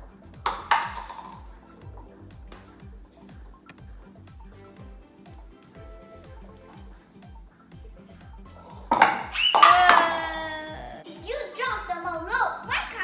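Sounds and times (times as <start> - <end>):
light background music with beat: 0.0 - 13.0
paper cups clattering down: 0.5 - 1.5, 8.8 - 10.4
voice crying out: 9.2 - 11.0.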